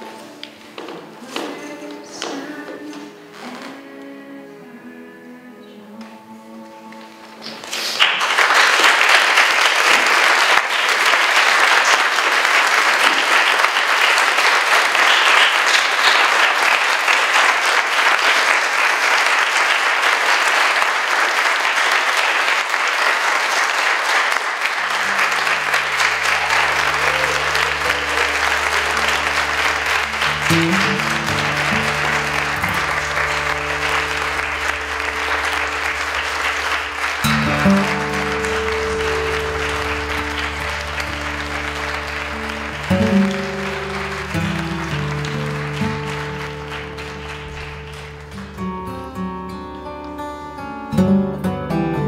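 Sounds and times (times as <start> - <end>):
audience applauding: 7.4 - 49.2
sustained music notes: 24.7 - 50.1.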